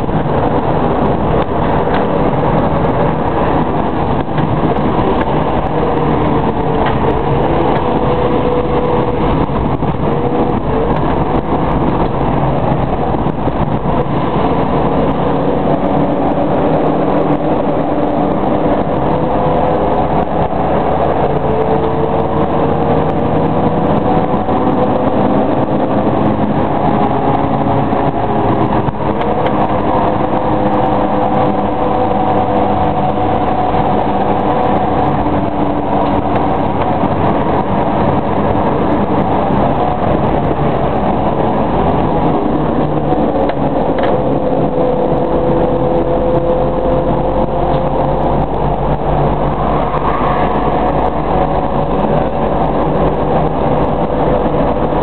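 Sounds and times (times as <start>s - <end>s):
car engine and road noise: 0.0s - 55.0s.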